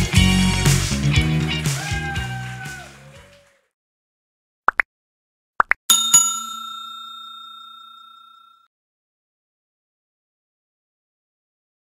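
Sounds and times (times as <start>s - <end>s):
notification bell ding: 5.9s - 8.7s.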